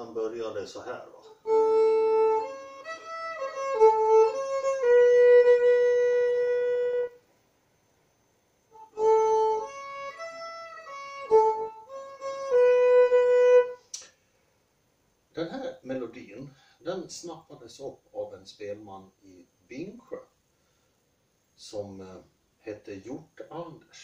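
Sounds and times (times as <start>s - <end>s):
solo fiddle playing: 1.3s - 7.2s, 8.7s - 13.9s.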